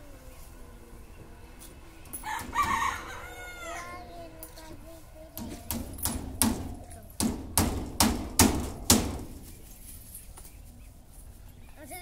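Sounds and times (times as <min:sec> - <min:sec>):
rooster crowing: 0:02.2 - 0:04.0.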